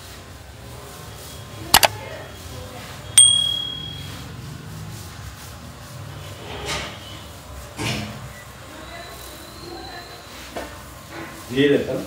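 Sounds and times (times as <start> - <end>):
quick double click: 1.7 - 1.9
bright bell ding: 3.2 - 4.2.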